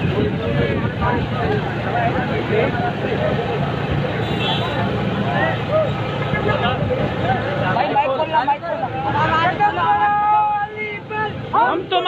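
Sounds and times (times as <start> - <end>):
crowd of men talking: 0.0 - 12.0.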